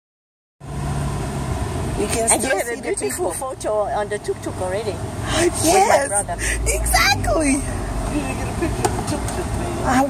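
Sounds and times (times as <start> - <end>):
road noise: 0.6 - 10.0.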